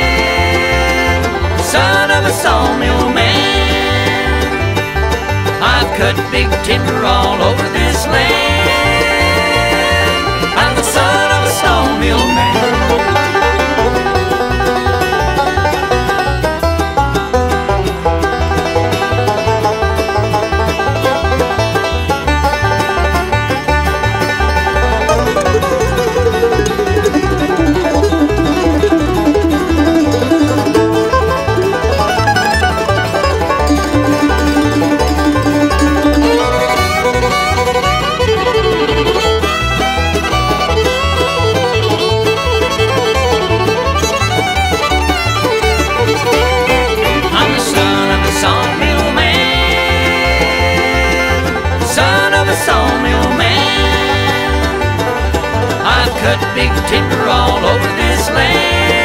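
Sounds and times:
banjo: 0.0s - 59.0s
fiddle: 0.0s - 59.0s
guitar: 0.0s - 59.0s
upright bass: 0.0s - 59.0s.

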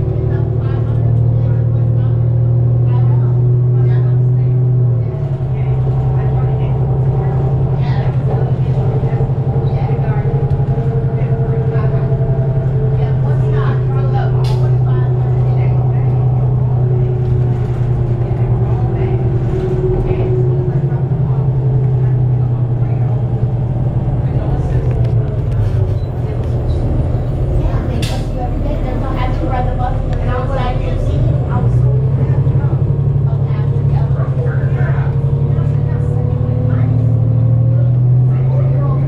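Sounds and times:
bus diesel engine rumble: 0.0s - 39.0s.

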